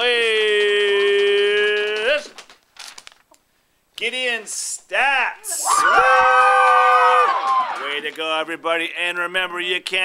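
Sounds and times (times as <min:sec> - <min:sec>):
man talking: 0:04.0 - 0:05.6, 0:07.8 - 0:10.0
man whooping: 0:05.5 - 0:07.8.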